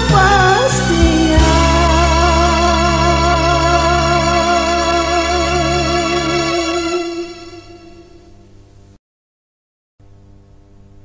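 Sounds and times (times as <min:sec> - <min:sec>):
pop song instrumental: 0:00.0 - 0:08.0.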